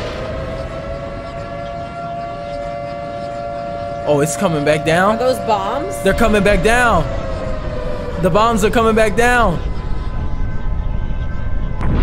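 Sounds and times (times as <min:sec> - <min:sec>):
low rumble: 0:00.0 - 0:12.0
siren-like wail: 0:00.0 - 0:12.0.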